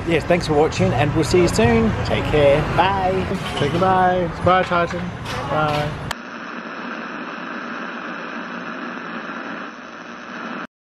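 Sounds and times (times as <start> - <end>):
television static hiss: 5.5 - 10.7.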